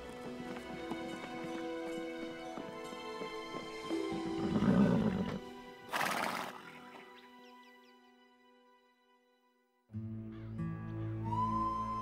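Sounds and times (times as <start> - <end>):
horse neighing: 4.4 - 6.7
film score sustained notes: 10.0 - 12.0.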